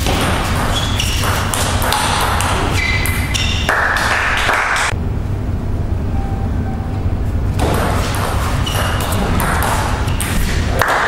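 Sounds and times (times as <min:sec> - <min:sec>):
table tennis ball pinging: 0:00.0 - 0:04.9, 0:07.6 - 0:11.0
low hum: 0:04.9 - 0:10.8.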